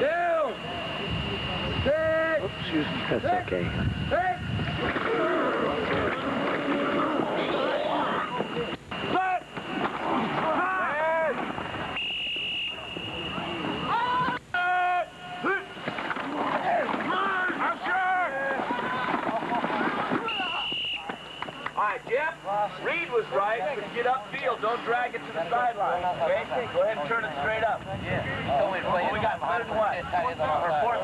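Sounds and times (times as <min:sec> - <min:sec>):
people shouting: 0:04.2 - 0:08.4, 0:09.1 - 0:11.4, 0:12.7 - 0:21.2
short whistle blasts: 0:11.9 - 0:14.0, 0:20.2 - 0:21.6.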